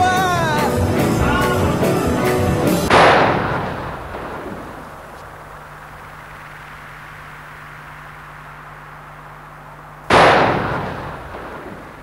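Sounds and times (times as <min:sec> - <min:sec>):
faint hiss with low hum: 0:00.0 - 0:12.0
loud bang: 0:02.7 - 0:04.7, 0:10.1 - 0:11.7.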